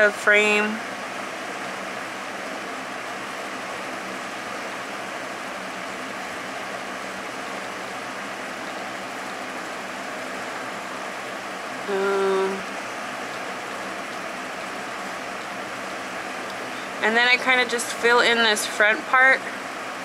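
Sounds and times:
electric fan running: 0.0 - 20.0.

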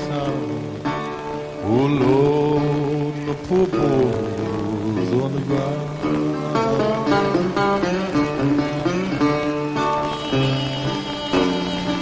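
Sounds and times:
resonator guitar blues playing: 0.0 - 12.0.

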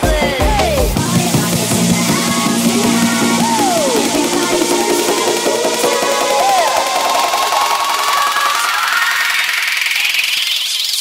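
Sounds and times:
rising noise sweep: 1.0 - 11.0.

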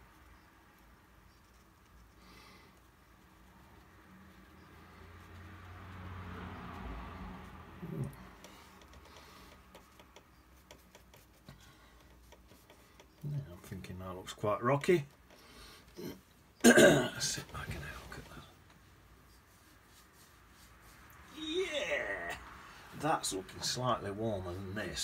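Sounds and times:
painting tool scraping on paper: 0.1 - 13.8, 17.3 - 21.4.

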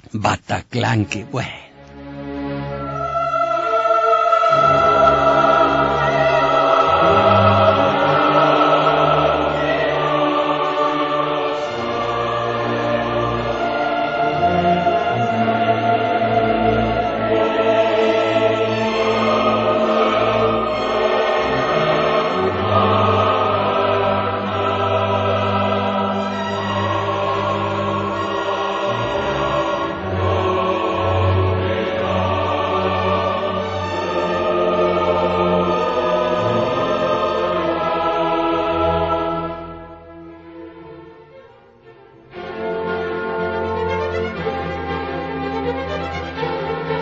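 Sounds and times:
choir singing sustained notes: 1.0 - 47.0
orchestra playing: 39.7 - 47.0.

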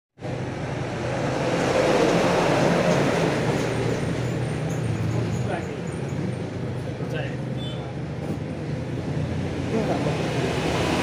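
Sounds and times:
vehicle passing close by: 0.2 - 7.3, 8.2 - 11.0.

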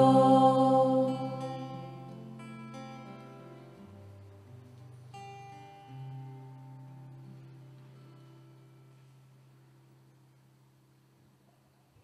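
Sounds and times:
women singing: 0.0 - 1.7
acoustic guitar: 0.0 - 12.0.

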